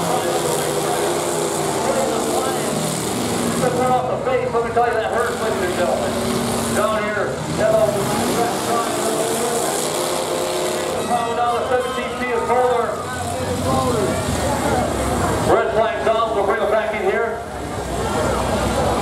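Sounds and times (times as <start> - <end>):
car engines running hard: 0.0 - 19.0
voices: 0.0 - 19.0.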